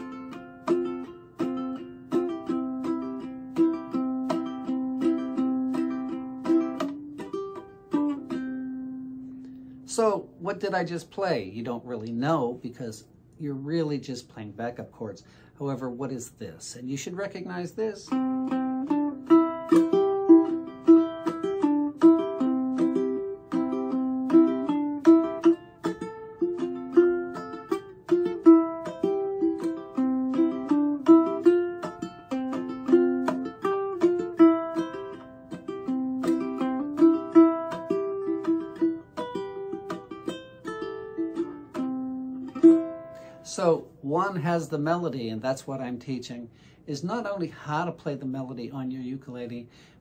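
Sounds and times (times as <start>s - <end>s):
ukulele plucked melody: 0.0s - 10.7s, 17.9s - 45.2s.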